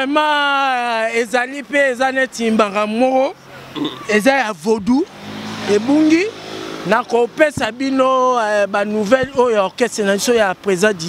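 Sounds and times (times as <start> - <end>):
man talking: 0.0 - 5.1, 5.7 - 11.0
car driving past: 5.0 - 7.4.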